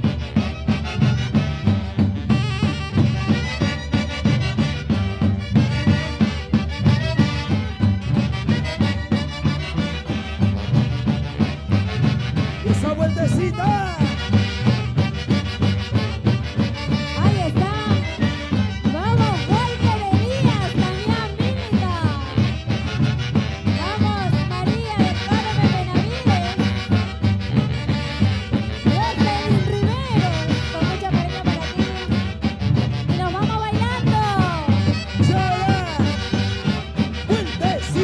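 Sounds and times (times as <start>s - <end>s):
pounding drum beat: 0.0s - 38.0s
saxophones playing melody: 0.0s - 38.0s.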